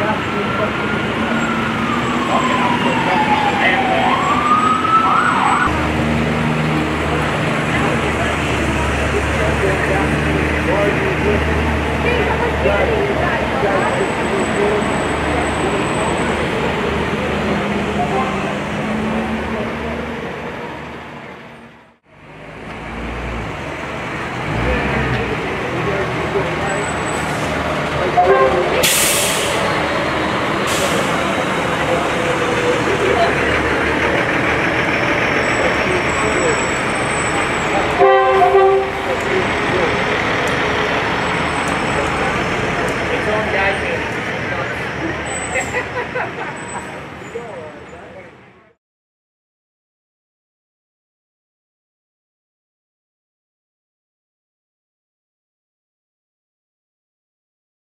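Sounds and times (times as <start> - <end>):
crowd and street noise: 0.0 - 48.8
fire truck engines running: 0.0 - 48.8
horn blast: 28.0 - 29.8, 37.9 - 39.2
air brakes hissing: 28.8 - 29.8, 30.6 - 31.5.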